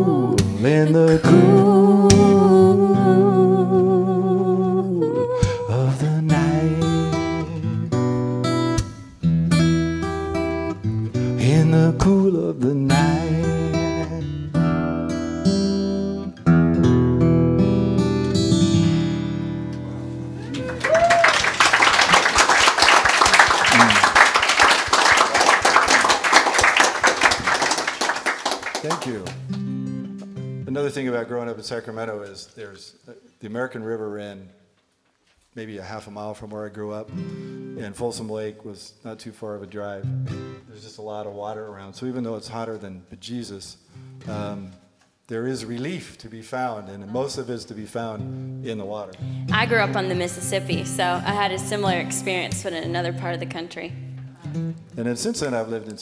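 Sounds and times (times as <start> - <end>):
man singing: 0.0 - 7.6, 11.4 - 14.5, 44.3 - 44.8
fingerpicked acoustic guitar: 0.0 - 20.5, 29.3 - 31.0, 37.0 - 38.0, 39.8 - 40.7, 43.9 - 45.0, 47.0 - 55.1
audience applauding: 20.4 - 29.7.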